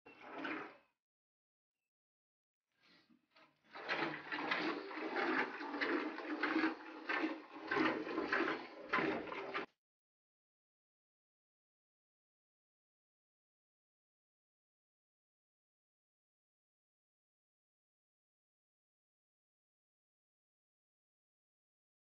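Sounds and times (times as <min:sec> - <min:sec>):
milk squirting into a pail: 0:03.7 - 0:09.7.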